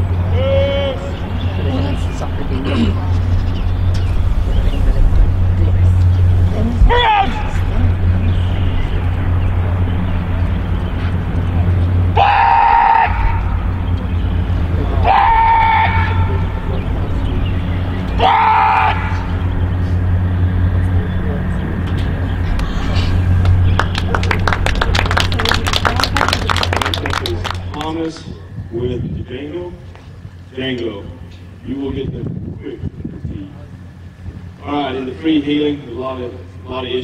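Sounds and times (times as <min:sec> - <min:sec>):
low rumble: 0:00.0 - 0:37.0.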